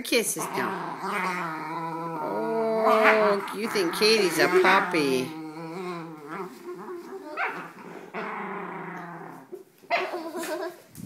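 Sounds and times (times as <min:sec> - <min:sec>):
dog growling playfully: 0:00.3 - 0:10.8
dog high vocal sounds: 0:00.4 - 0:10.9.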